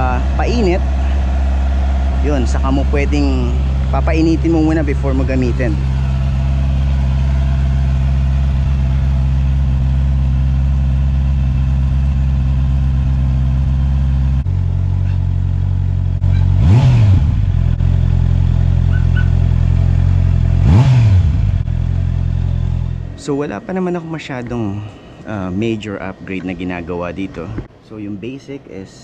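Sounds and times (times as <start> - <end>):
motorcycle engine idling: 0.0 - 27.7
motorcycle engine revving: 0.0 - 27.7.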